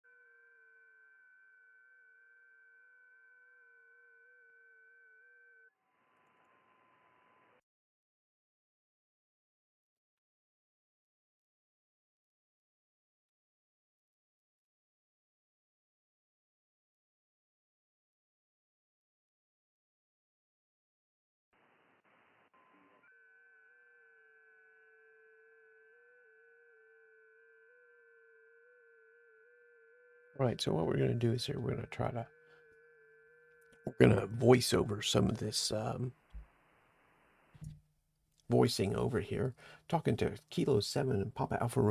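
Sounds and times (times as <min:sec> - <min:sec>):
steady digital radio tones: 0:30.4 - 0:32.3, 0:33.9 - 0:36.1.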